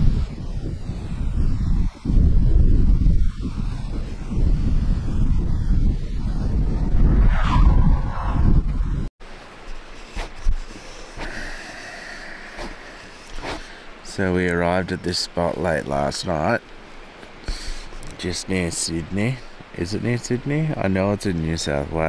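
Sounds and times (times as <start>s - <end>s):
wind buffeting microphone: 0.0s - 9.1s.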